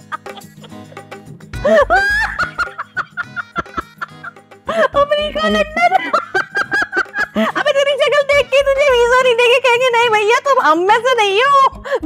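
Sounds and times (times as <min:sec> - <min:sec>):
woman cackling laugh: 0:00.0 - 0:07.7.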